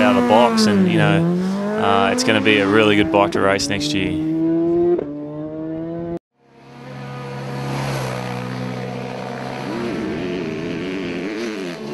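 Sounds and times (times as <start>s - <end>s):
engine-like drone: 0.0s - 11.9s
motorcycle engine revving: 0.0s - 11.9s.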